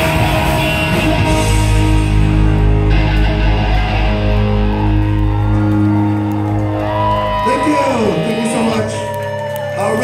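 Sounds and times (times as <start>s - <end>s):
ska punk band playing live: 0.0s - 5.4s.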